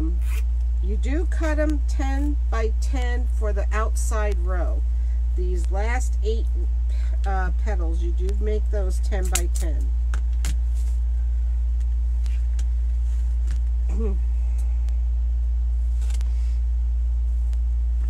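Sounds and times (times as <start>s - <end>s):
low hum: 0.0s - 18.0s.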